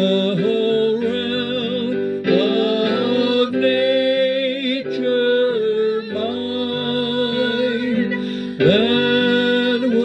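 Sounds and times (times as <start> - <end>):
hymn sung with accompaniment: 0.0 - 10.0.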